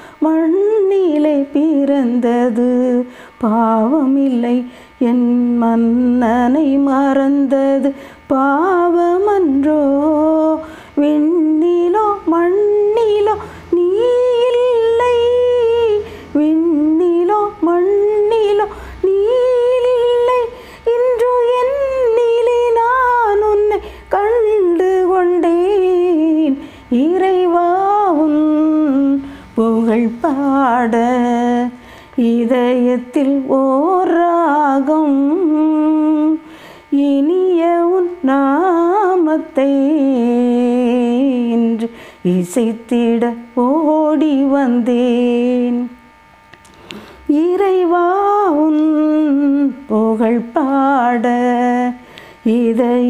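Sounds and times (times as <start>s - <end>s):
woman singing unaccompanied: 0.0s - 46.1s, 47.2s - 53.0s.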